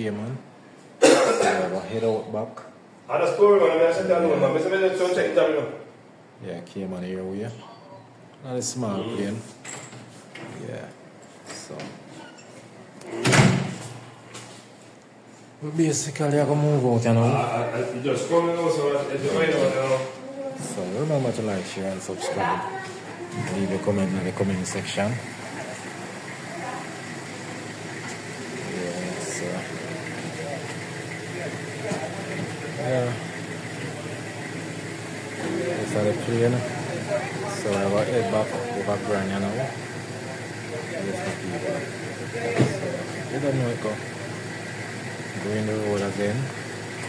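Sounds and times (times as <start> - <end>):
people talking: 1.0 - 5.8, 15.6 - 27.6, 28.5 - 34.5, 35.4 - 44.5, 45.3 - 46.6
door swinging shut with thud: 13.1 - 13.8
engine idling: 23.5 - 47.0.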